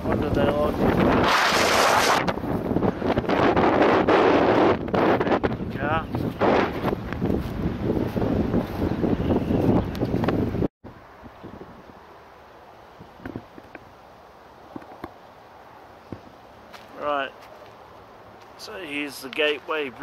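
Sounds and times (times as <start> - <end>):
wind buffeting microphone: 0.0 - 12.0
quiet outdoor background: 9.2 - 20.0.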